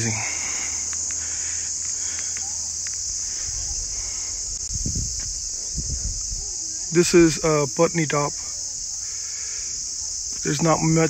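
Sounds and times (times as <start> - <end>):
low rumbling: 0.0 - 7.2
shrill insect chorus: 0.0 - 11.0.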